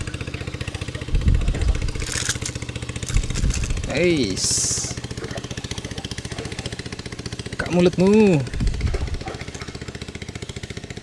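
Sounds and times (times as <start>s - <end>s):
small boat engine idling: 0.0s - 11.0s.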